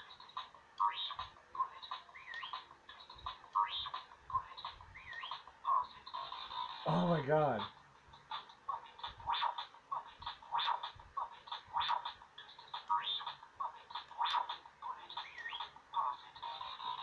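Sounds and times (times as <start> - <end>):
toy speaker electronic beeps and chirps: 0.0 - 6.8, 9.0 - 17.0.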